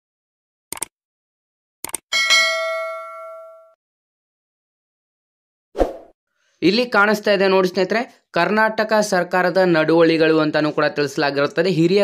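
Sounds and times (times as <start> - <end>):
notification bell ding: 2.1 - 3.8.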